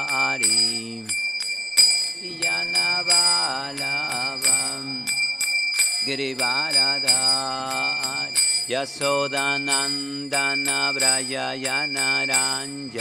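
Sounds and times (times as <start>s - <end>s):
man singing devotional song: 0.0s - 1.2s, 2.0s - 13.0s
hand cymbals ringing: 0.0s - 13.0s.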